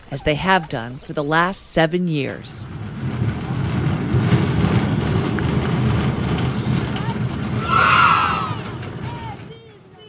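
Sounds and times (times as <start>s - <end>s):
steel gate rumbling and rattling: 1.0s - 10.0s.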